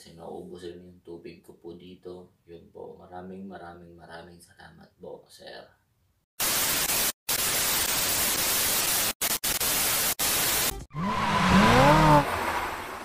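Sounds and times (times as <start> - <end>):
tv static hiss: 6.4 - 10.8
tones sweeping up and down: 10.7 - 12.4.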